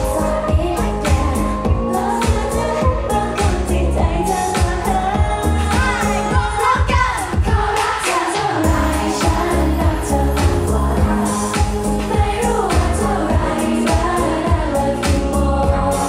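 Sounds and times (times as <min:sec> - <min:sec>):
pop backing track with heavy bass: 0:00.0 - 0:16.0
women singing into microphones: 0:00.0 - 0:16.0.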